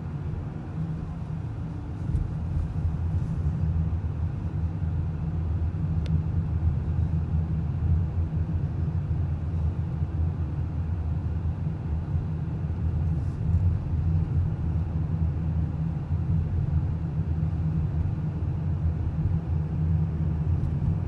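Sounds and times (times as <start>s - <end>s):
tyre road noise: 0.0s - 5.1s
car engine rumble: 0.0s - 21.0s.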